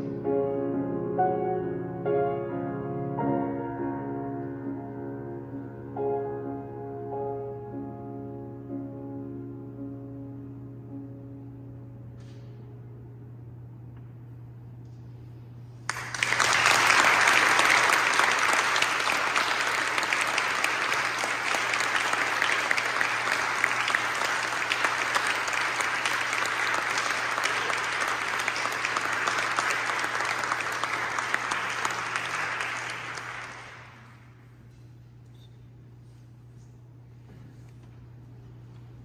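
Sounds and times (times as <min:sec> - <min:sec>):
audience applauding: 0:15.9 - 0:34.4.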